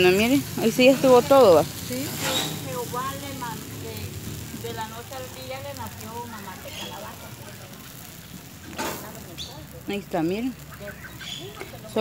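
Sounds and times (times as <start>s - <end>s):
faint background voices: 0.2s - 12.0s.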